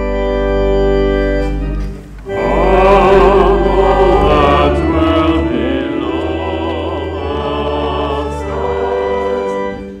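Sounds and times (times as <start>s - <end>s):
organ: 0.0s - 10.0s
voices singing a hymn: 2.2s - 10.0s.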